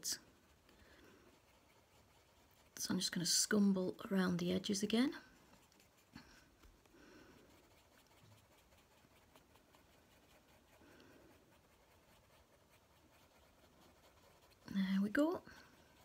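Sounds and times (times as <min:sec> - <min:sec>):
pencil scratching on paper: 0:00.0 - 0:16.0.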